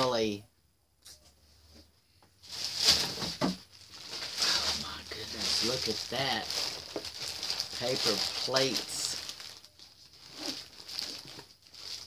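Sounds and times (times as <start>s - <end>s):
plastic wrapping crinkling: 2.4s - 12.0s.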